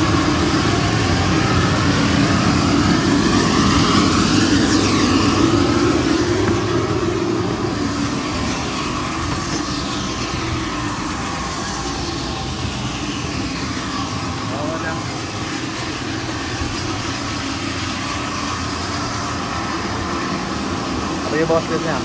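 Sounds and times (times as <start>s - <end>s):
bus engine noise: 0.0s - 22.0s
faint falling whines: 0.0s - 22.0s.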